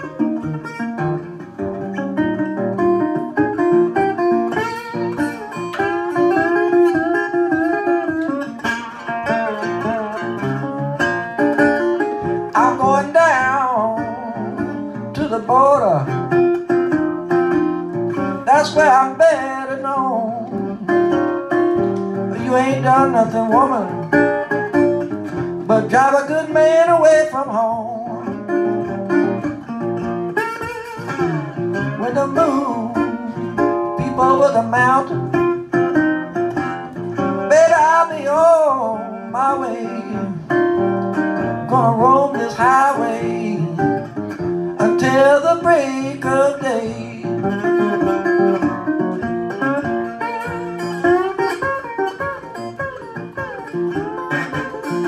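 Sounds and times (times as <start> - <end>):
fingerstyle blues guitar: 0.0 - 55.0
person singing: 12.2 - 16.4, 18.1 - 21.2, 21.8 - 24.2, 25.6 - 28.5, 31.0 - 35.7, 37.1 - 48.9.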